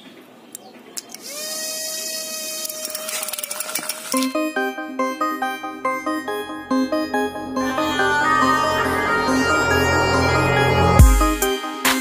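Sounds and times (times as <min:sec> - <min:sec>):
small motor whining: 0:01.1 - 0:04.2.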